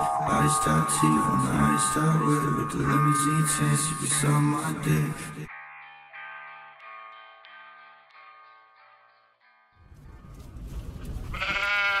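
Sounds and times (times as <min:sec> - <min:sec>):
low rumbling noise: 0:00.0 - 0:04.2
sheep bleating: 0:01.6 - 0:04.4, 0:11.3 - 0:12.0.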